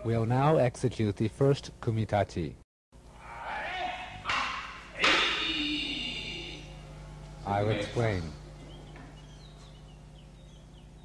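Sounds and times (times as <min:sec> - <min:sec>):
person shouting: 0:03.2 - 0:06.7.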